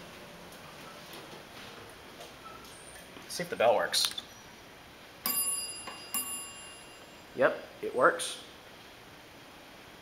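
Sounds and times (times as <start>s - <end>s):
elevator bell ding: 5.2s - 7.3s.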